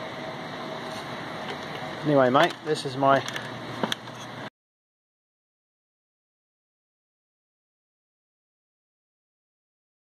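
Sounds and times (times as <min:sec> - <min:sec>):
faint high hum: 0:00.0 - 0:04.5.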